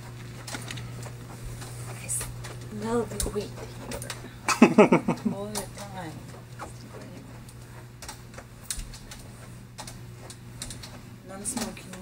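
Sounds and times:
crutches and footfalls tapping: 0.0s - 12.0s
steady low hum: 0.0s - 12.0s.

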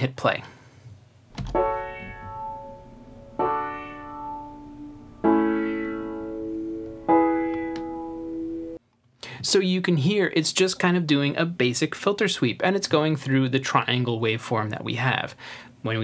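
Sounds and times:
piano chords with filter sweep: 1.4s - 8.8s.

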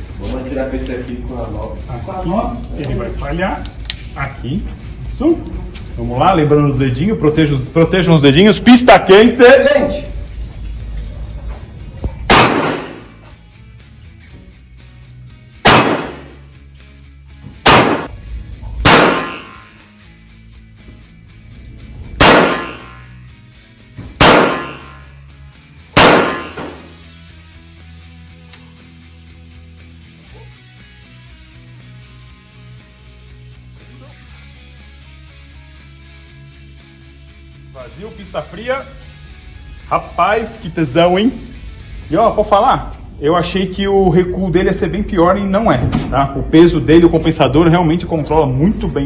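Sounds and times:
faint background music: 0.0s - 49.0s
revolver gunshots indoors: 12.2s - 13.2s, 15.6s - 16.4s, 17.6s - 19.8s, 22.2s - 23.2s, 24.2s - 25.1s, 25.9s - 27.0s.

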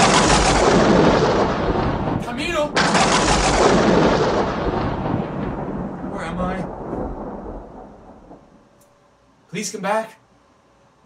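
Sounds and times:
thunder rumble: 0.0s - 8.8s.

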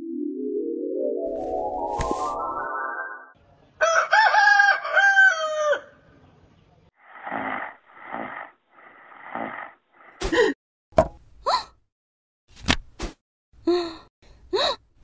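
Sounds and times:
soft swishes: 1.4s - 2.4s
rooster crowing: 3.8s - 6.0s.

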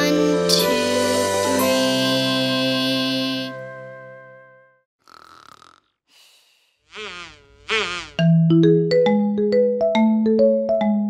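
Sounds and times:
gentle children's song: 0.0s - 3.9s
cartoon snoring inhales: 5.0s - 8.2s.

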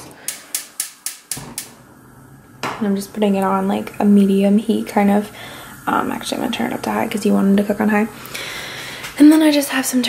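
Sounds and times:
gas burner igniter clicking: 0.0s - 1.8s.

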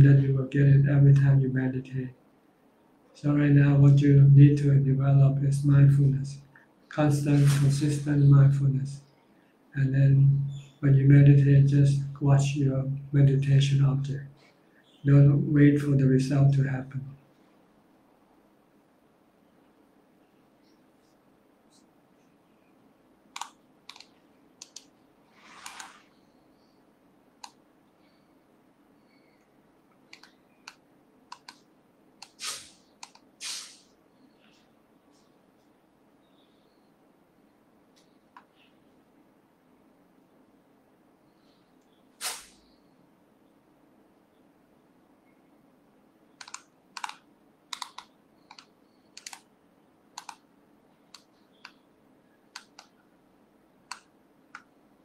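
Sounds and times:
low room hum: 0.0s - 55.0s
computer keyboard clicking: 23.3s - 24.9s, 30.1s - 31.6s, 33.0s - 33.3s, 46.4s - 49.5s, 50.2s - 50.4s
short rustling swish: 32.4s - 32.8s, 42.2s - 42.6s.

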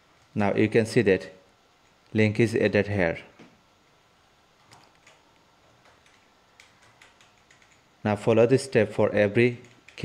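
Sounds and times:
computer mouse clicks: 4.6s - 7.9s, 9.6s - 10.0s.

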